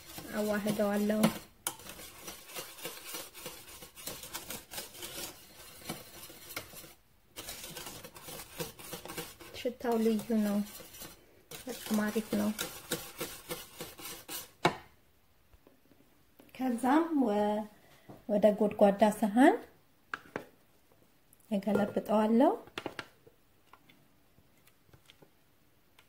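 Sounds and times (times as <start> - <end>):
whisk scraping a metal pot: 0.0 - 14.6.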